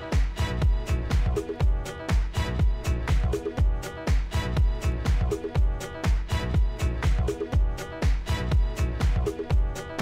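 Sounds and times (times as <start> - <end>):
techno kick drum: 0.0 - 10.0.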